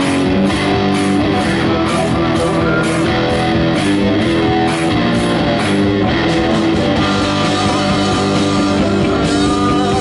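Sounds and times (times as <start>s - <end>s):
bass guitar: 0.0s - 10.0s
drum kit: 0.0s - 10.0s
electric guitars: 0.0s - 10.0s.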